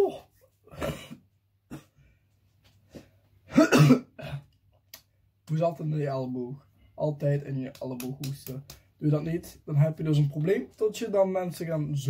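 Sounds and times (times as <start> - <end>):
person coughing: 0.7 - 2.0, 3.5 - 4.5.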